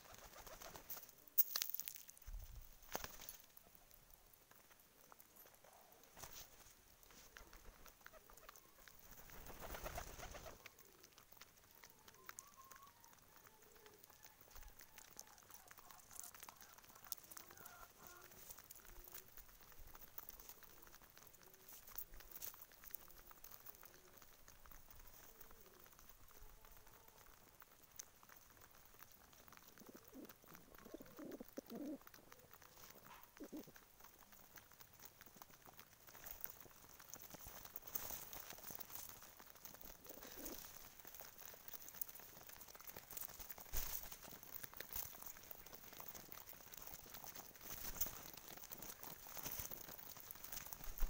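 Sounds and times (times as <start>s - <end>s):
pecking clicks on grain: 0.0s - 51.0s
pigeons cooing: 7.3s - 22.1s, 22.9s - 27.4s, 29.2s - 33.8s, 39.8s - 41.2s.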